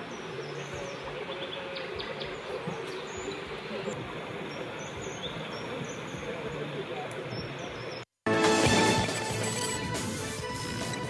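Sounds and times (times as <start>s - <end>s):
outdoor ambient hiss: 0.0s - 11.0s.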